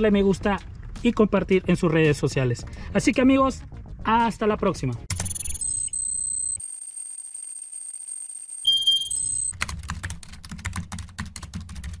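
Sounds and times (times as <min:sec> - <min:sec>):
sharp typing-like clicks: 0:05.1 - 0:06.6
short electronic beep: 0:05.1 - 0:06.7, 0:08.5 - 0:09.5
steady high-pitched tone: 0:05.2 - 0:09.5.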